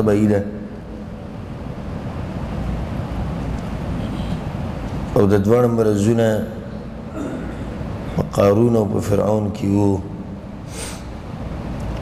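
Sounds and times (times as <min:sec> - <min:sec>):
low rumbling with hiss: 0:00.0 - 0:12.0.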